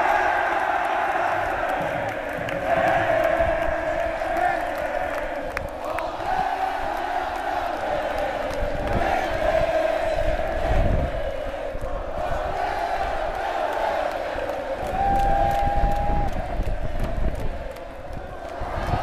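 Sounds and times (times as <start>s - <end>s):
crowd chanting and cheering: 0.0s - 19.0s.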